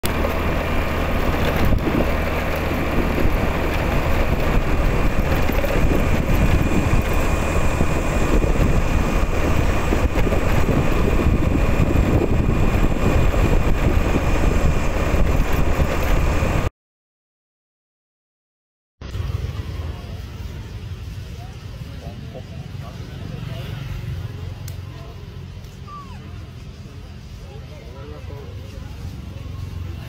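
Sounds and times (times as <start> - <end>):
scooter engine running: 0.0 - 16.7, 19.0 - 30.0
tyre noise on road: 0.0 - 16.7, 19.0 - 30.0
wind buffeting microphone: 0.0 - 16.7.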